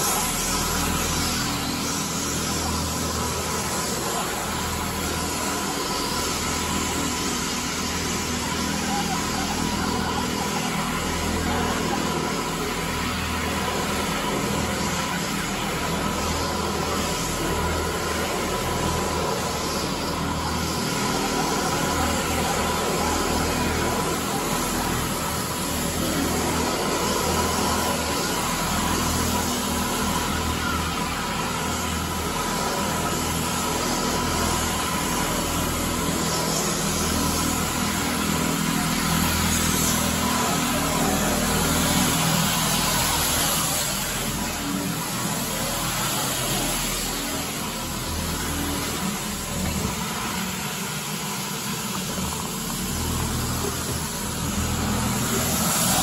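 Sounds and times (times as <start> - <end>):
floor scrubber motors whining: 0.0 - 56.0.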